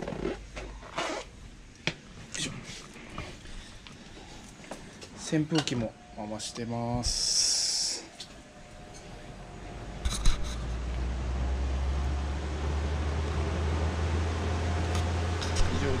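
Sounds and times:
electric fan airflow rumble: 0:00.0 - 0:16.0.

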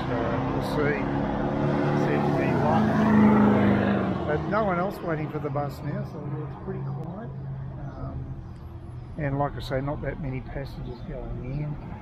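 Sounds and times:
vehicle engine passing by: 0:00.0 - 0:12.0.

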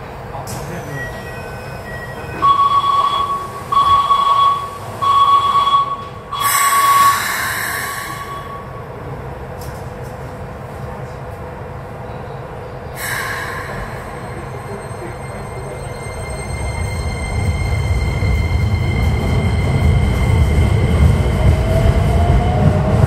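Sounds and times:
steady high tone pulses: 0:01.1 - 0:08.9.

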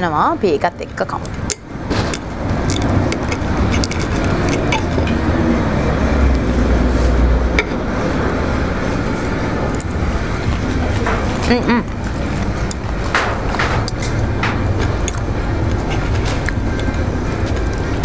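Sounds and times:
steady rumbling background: 0:00.0 - 0:18.0.

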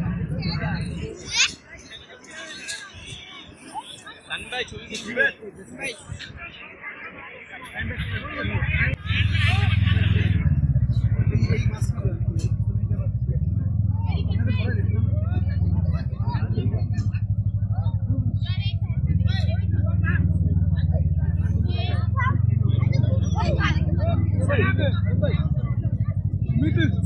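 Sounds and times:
faint crowd voices: 0:00.0 - 0:27.0
loud low rumble: 0:08.6 - 0:27.0.

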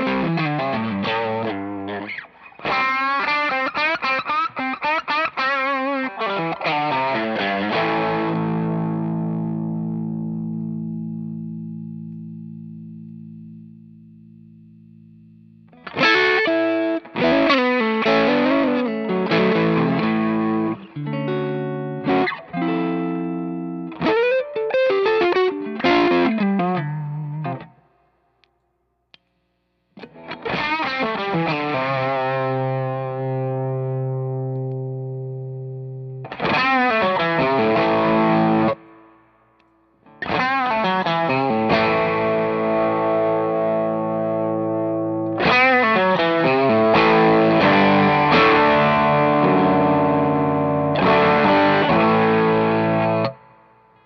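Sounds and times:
fuzz-distorted electric guitar: 0:00.0 - 0:27.8, 0:30.0 - 0:39.1, 0:40.1 - 0:54.0.

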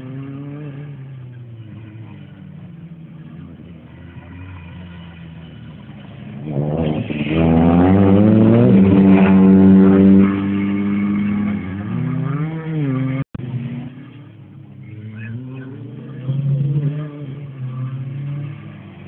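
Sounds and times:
rally car accelerating past: 0:03.8 - 0:14.2.

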